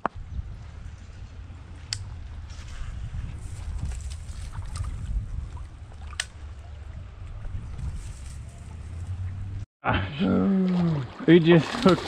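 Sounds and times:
wind buffeting microphone: 0:00.1 - 0:09.6.

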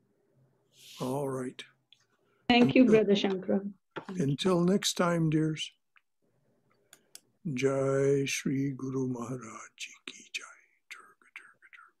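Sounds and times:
whispered speech: 0:09.2 - 0:12.0.

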